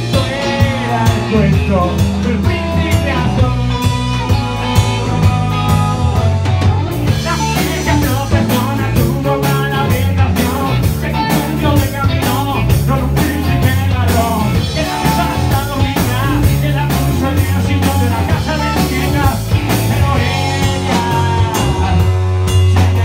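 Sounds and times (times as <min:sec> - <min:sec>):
bass guitar: 0:00.0 - 0:23.0
electric guitar: 0:00.0 - 0:23.0
man singing: 0:00.0 - 0:23.0
steady drum beat: 0:00.0 - 0:23.0.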